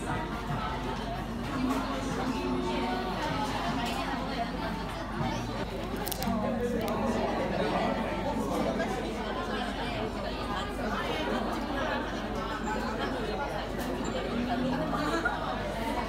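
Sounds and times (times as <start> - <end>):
babble of diners talking: 0.0 - 16.0.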